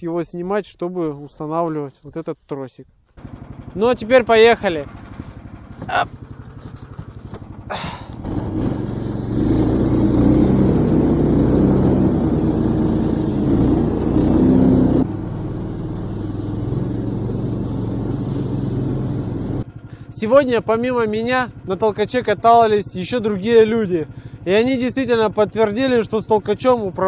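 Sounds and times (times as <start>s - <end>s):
small engine idling and revving: 3.2s - 27.0s.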